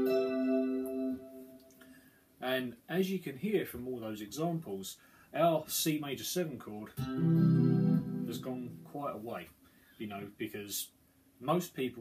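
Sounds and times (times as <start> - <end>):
electric guitar chord ringing: 0.0 - 1.8, 7.0 - 8.9.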